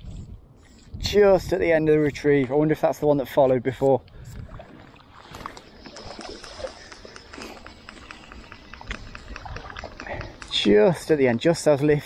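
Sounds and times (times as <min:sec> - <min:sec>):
wind rumble on microphone: 0:00.0 - 0:02.6, 0:04.0 - 0:04.8.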